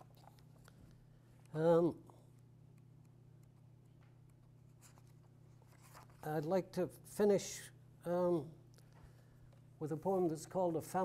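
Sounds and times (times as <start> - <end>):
steady low hum: 0.0 - 11.0
paper pages rustling: 4.6 - 6.3.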